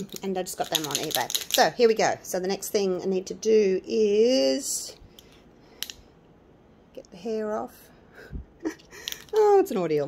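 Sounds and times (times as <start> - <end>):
low room hiss: 0.0 - 10.0.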